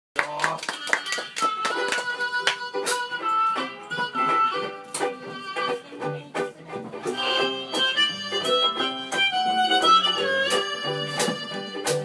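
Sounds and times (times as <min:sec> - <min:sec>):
jug band playing: 0:00.4 - 0:12.0
strummed guitar: 0:00.4 - 0:12.0
strummed banjo ukulele: 0:00.9 - 0:12.0.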